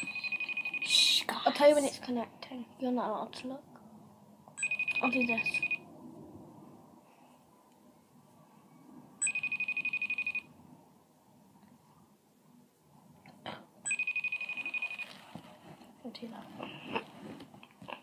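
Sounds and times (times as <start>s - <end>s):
phone ringing: 0.0s - 1.0s, 4.6s - 5.8s, 9.2s - 10.6s, 13.9s - 15.2s.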